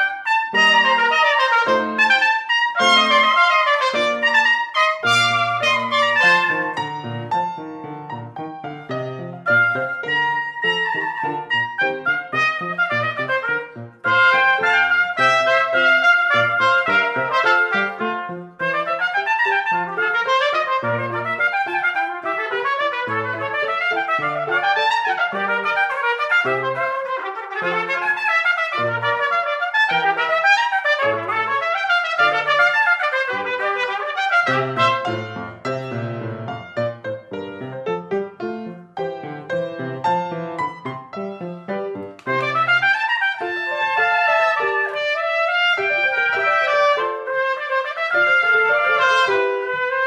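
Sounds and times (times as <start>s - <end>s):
trumpet duet: 0.0s - 7.7s, 8.8s - 37.6s, 41.9s - 50.0s
piano accompaniment: 0.0s - 50.0s.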